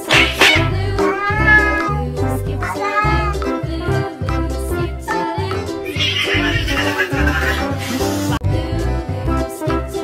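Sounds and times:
background music with steady beat: 0.0s - 10.0s
cat meowing: 0.4s - 3.4s, 5.9s - 7.6s.

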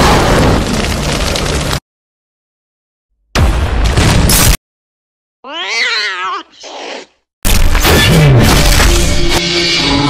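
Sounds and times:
loud explosion-like burst: 0.0s - 1.2s
cat-like yowl: 5.5s - 6.6s.

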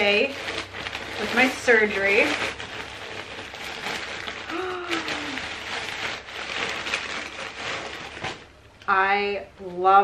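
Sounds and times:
plastic bag crinkling: 0.0s - 9.0s
person humming: 4.5s - 5.6s.

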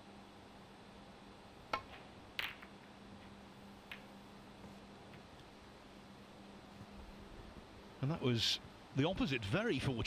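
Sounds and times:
snooker balls clacking: 1.8s - 2.8s, 3.8s - 4.2s
cue striking ball click: 3.8s - 4.2s.

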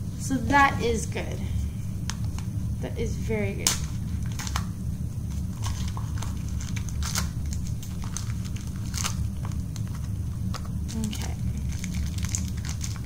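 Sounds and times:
steady low hum: 0.0s - 13.0s
plastic packaging crinkling: 3.6s - 13.0s.

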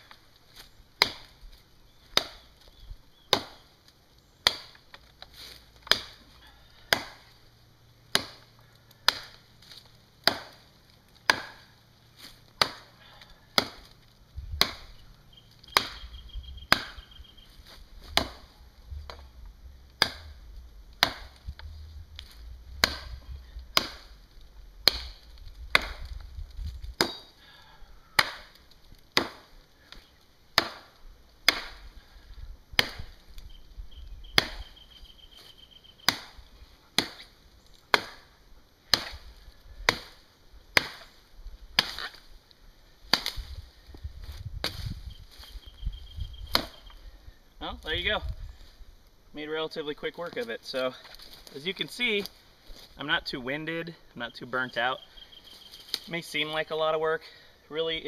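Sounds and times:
machete chopping wood: 1.0s - 1.4s, 2.1s - 2.5s, 3.3s - 3.7s, 4.4s - 4.9s, 5.8s - 6.2s, 6.9s - 7.3s, 8.1s - 9.4s, 10.2s - 10.6s, 11.2s - 11.8s, 12.6s - 12.9s, 13.5s - 13.9s, 14.5s - 15.0s, 15.7s - 16.1s, 16.7s - 19.2s, 20.0s - 20.4s, 21.0s - 21.6s, 22.2s - 24.1s, 24.8s - 26.2s, 26.9s - 27.3s, 28.1s - 29.6s, 30.6s - 31.9s, 32.8s - 33.2s, 34.4s - 34.7s, 36.1s - 37.3s, 37.9s - 42.3s, 43.1s - 43.6s, 44.3s - 45.5s, 46.4s - 47.0s.

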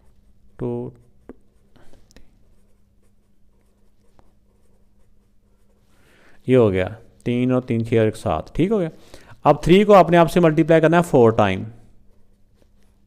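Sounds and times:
marker pen scratching on paper: 0.0s - 6.0s, 12.0s - 13.0s
marker pen tapping: 1.2s - 1.5s.

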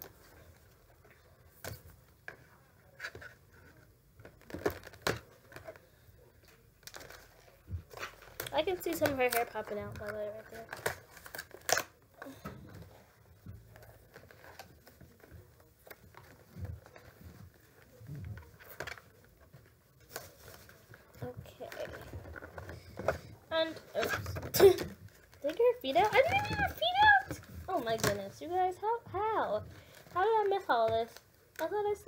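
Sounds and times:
packaging rustling: 6.5s - 28.6s.

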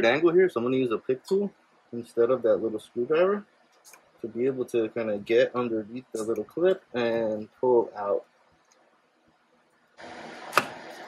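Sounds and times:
steady hiss: 10.0s - 11.0s.

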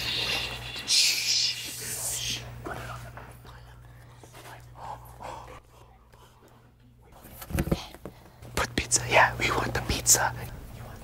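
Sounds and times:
low steady hum: 0.0s - 11.0s
whispers: 0.0s - 11.0s.

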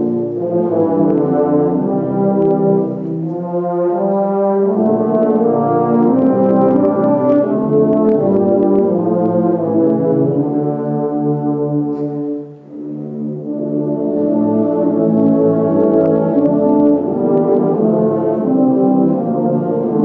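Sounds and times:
tubas and euphoniums playing a carol: 0.0s - 20.0s.

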